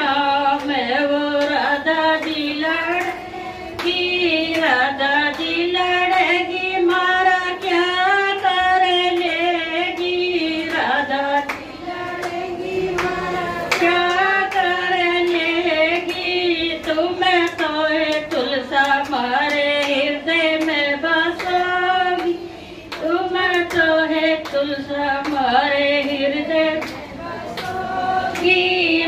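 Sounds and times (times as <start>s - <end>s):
woman singing into microphone: 0.0s - 29.0s
hand claps: 0.4s - 28.7s.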